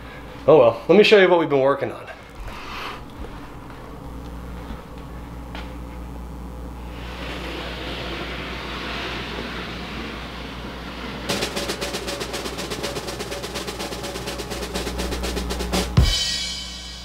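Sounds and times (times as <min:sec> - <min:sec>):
snare drum roll: 0:07.0 - 0:17.0.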